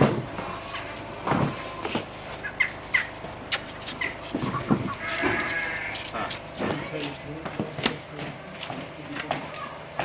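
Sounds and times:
sheep bleating: 4.7s - 6.3s.

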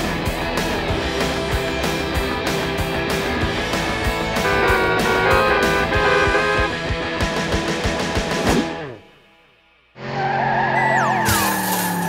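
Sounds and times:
music: 0.0s - 9.9s
car engine tone: 4.4s - 6.8s
tire squeal: 10.0s - 12.0s.

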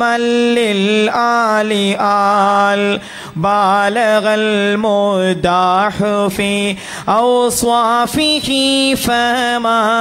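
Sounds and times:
man chanting devotional praise: 0.0s - 10.0s.

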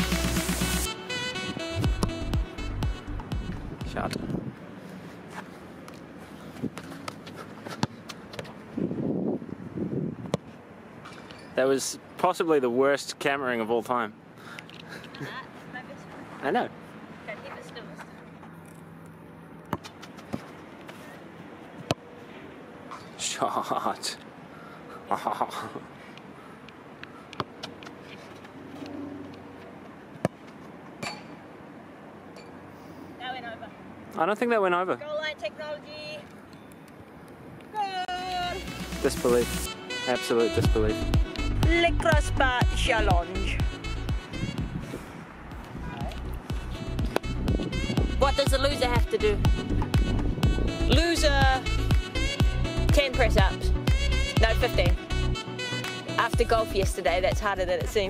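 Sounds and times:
background music: 0.0s - 4.0s, 38.1s - 44.8s, 46.2s - 58.0s
outdoor background noise: 0.0s - 58.0s.

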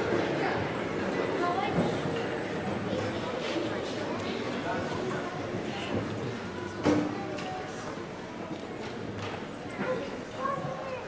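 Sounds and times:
murmur of voices in a hall: 0.0s - 11.0s.

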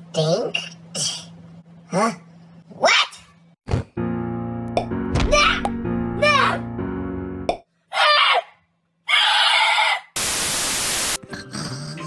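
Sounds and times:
sustained musical chords: 4.0s - 7.5s
tv static hiss: 10.2s - 11.2s.

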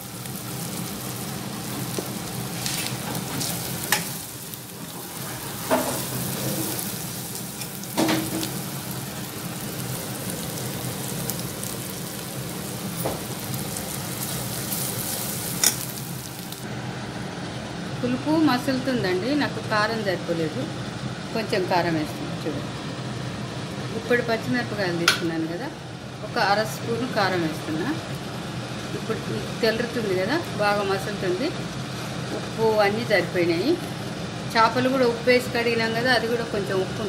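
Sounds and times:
masala frying with sizzle: 0.0s - 17.9s, 19.1s - 37.0s.

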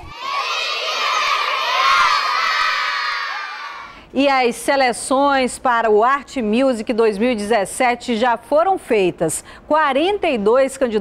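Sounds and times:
crowd of children cheering: 0.0s - 3.9s.

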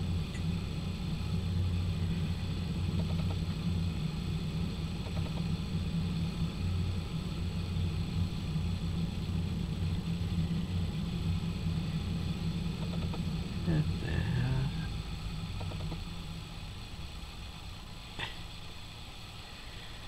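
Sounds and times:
faint hiss: 0.0s - 20.0s
steady low hum: 0.0s - 20.0s.

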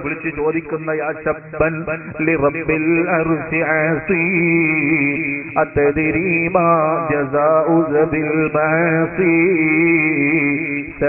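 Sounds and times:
man chanting religious recitation: 0.0s - 11.0s.

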